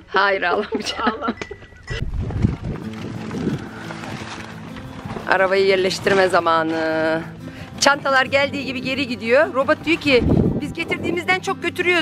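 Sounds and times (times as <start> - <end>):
wind buffeting microphone: 1.9 - 5.4, 8.1 - 11.6.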